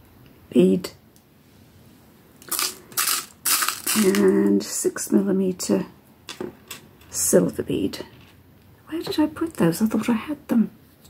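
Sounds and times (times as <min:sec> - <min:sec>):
bead packets rustling: 0:02.4 - 0:04.6.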